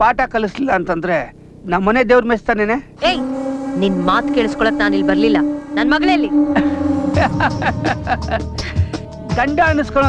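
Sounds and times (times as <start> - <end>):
voices speaking: 1.8 - 8.6
steady drone: 2.9 - 9.8.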